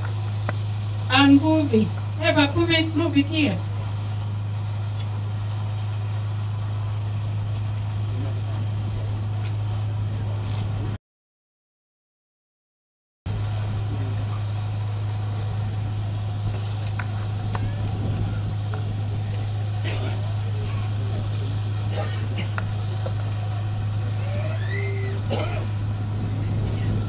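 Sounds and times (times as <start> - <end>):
electrical hum with hiss: 0.0 - 11.0, 13.3 - 27.0
faint voices: 17.1 - 27.0.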